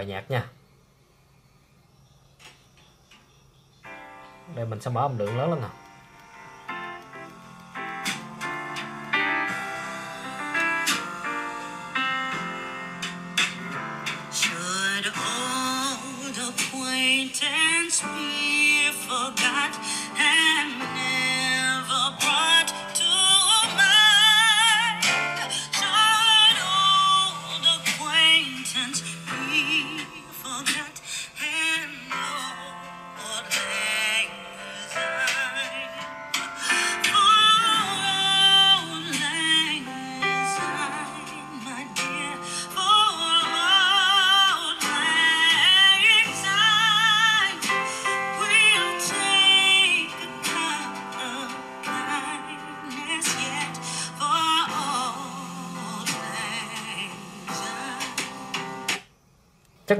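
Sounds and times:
song over loudspeakers: 4.6s - 59.0s.

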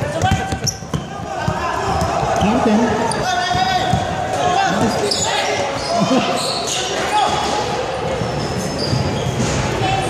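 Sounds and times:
basketball bouncing: 0.0s - 5.0s
players' voices: 0.0s - 10.0s
sneakers squeaking: 0.0s - 10.0s.

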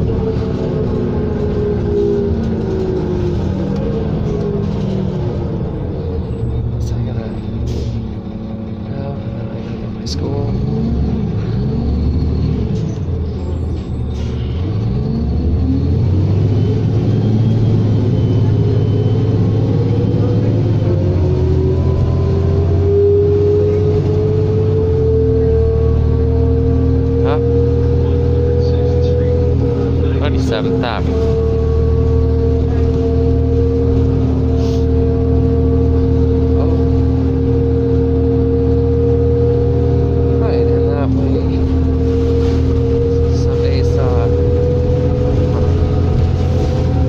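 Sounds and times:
bus diesel engine drone: 0.0s - 47.0s
whine climbing in pitch: 14.8s - 47.0s.

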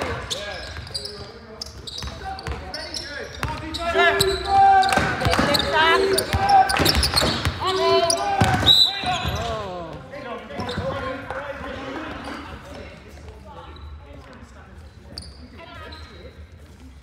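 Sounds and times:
shoe squeak: 0.0s - 9.6s, 10.5s - 11.2s, 12.1s - 12.9s, 13.6s - 14.2s, 14.9s - 17.0s
ball bouncing on wooden court: 4.6s - 10.0s.

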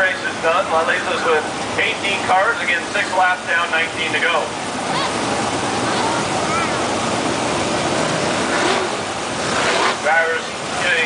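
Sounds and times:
race car engines roaring: 0.0s - 11.0s.

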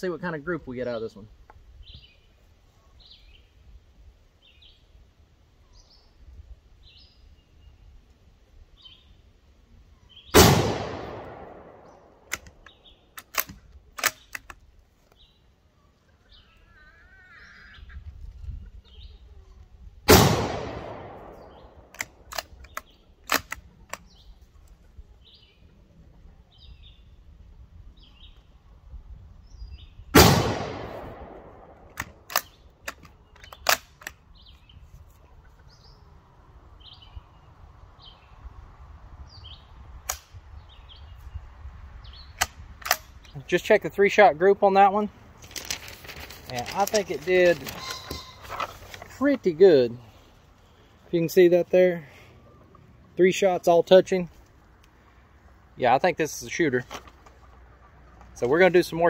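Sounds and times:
birds chirping faintly: 0.0s - 20.0s, 20.6s - 59.0s
rifle shots ringing out: 10.3s - 12.3s, 20.1s - 22.2s, 30.2s - 32.6s
rifle bolt clicks: 10.7s - 14.6s, 21.8s - 24.0s, 31.8s - 34.2s, 40.0s - 40.3s, 42.4s - 43.4s.

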